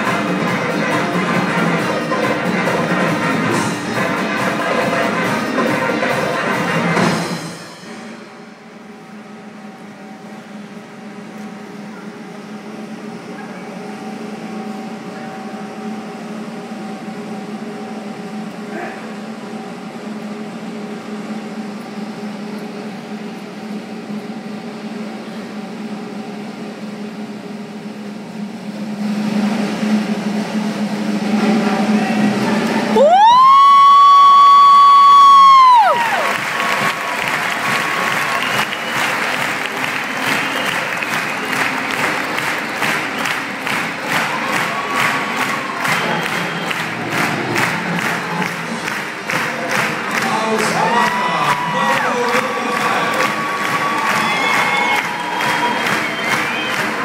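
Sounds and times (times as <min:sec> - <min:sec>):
audience applause and cheering: 0:00.0 - 0:08.2, 0:31.4 - 0:57.0
circus accompanying music: 0:00.0 - 0:18.6, 0:35.4 - 0:57.0.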